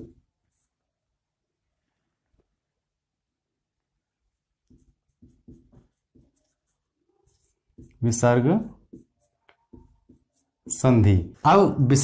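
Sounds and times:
marker scratching on whiteboard: 0.0s - 0.8s, 4.3s - 11.5s.

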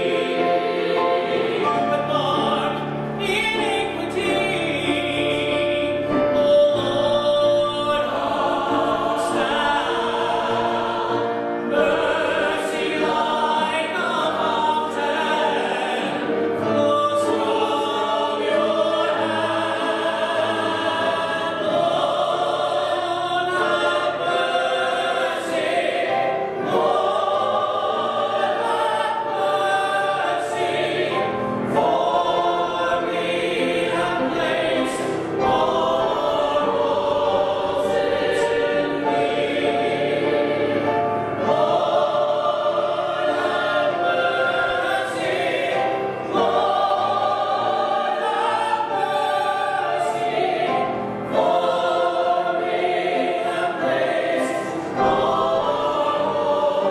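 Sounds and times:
choir singing: 0.0s - 56.9s.

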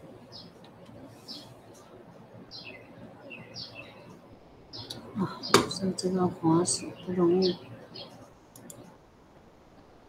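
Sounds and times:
computer mouse clicks: 8.5s - 8.9s.

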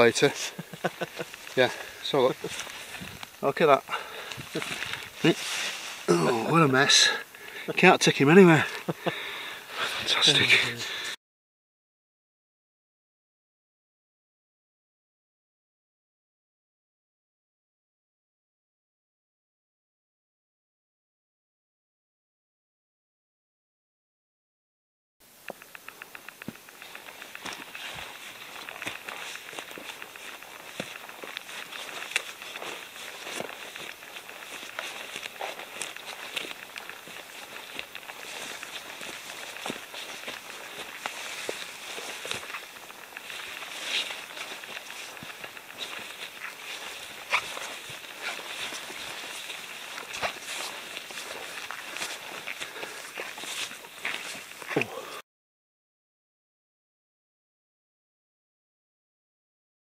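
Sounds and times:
footsteps through dry undergrowth: 0.0s - 11.1s, 25.7s - 55.2s
stems and twigs snapping: 0.7s - 3.4s, 25.5s - 54.9s.

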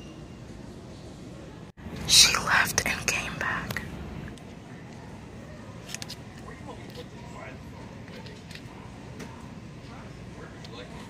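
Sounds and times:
person whispering: 2.1s - 3.9s.

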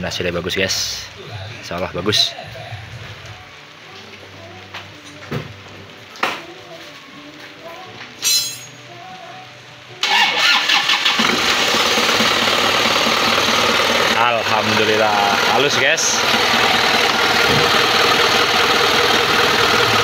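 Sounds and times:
diesel engine starting and running: 10.0s - 20.0s.

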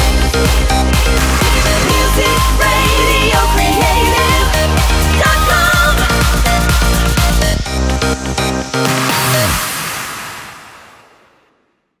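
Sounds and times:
hissy electronic wash: 0.4s - 7.6s.

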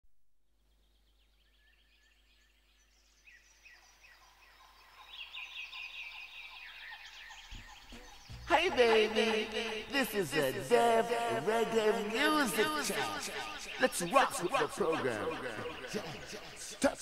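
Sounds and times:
chorus of bird calls: 0.9s - 17.0s.

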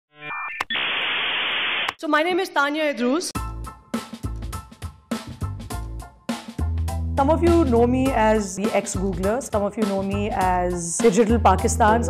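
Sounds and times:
electronic buzz: 0.1s - 2.0s
static hiss: 0.3s - 2.0s.

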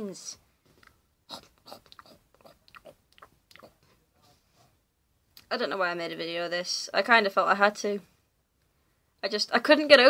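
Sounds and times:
person making mouth clicks and chomps: 0.8s - 3.8s.

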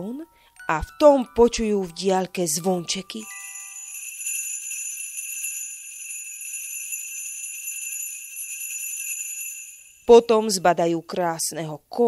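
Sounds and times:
sleigh bells jingling: 2.6s - 10.4s.

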